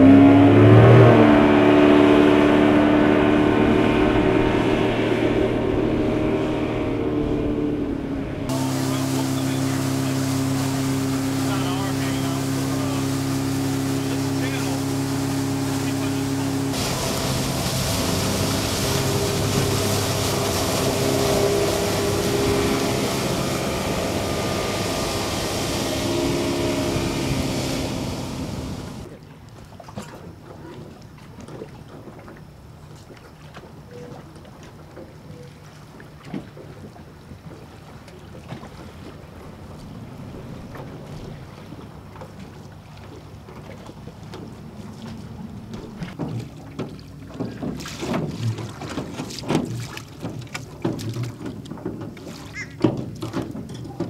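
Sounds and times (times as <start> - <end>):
outboard motor running: 0.0 - 54.0
water spray hissing: 8.5 - 29.0
rushing wind: 12.2 - 29.1.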